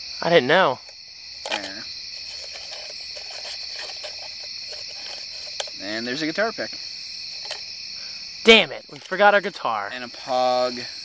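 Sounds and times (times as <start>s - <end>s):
crickets and night insects: 0.0s - 11.0s
clicks and rustles of objects: 0.8s - 5.8s, 7.3s - 7.7s, 8.8s - 9.2s.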